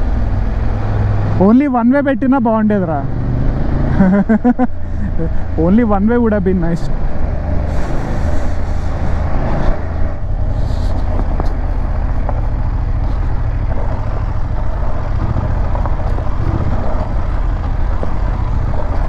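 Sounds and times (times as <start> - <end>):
wind rumble on microphone: 6.9 - 19.0
motorcycle engine running: 10.2 - 19.0.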